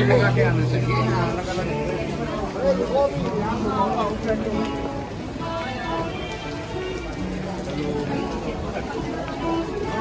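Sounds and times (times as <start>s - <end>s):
background music with melody: 0.0s - 10.0s
heavy rain on wet paving: 0.0s - 10.0s.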